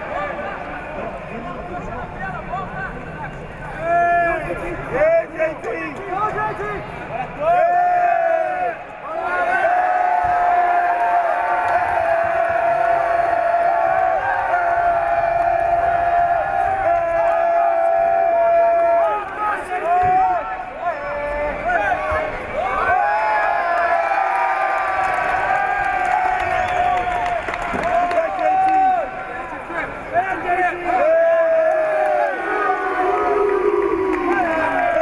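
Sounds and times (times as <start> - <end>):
crowd noise in a hall: 0.0 - 35.0.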